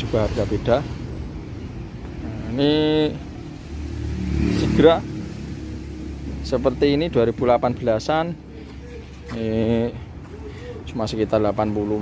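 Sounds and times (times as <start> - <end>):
vehicle engine revving: 2.2 - 7.0.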